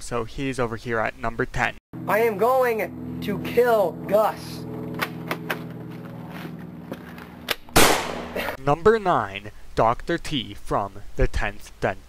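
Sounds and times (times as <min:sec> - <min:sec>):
low hum: 0:02.0 - 0:08.6
loud gunshot: 0:07.7 - 0:08.6.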